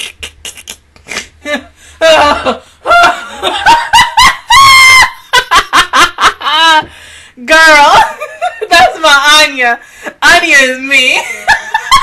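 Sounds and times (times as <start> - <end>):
woman laughing: 1.1 - 6.9, 7.8 - 9.1, 11.1 - 12.0.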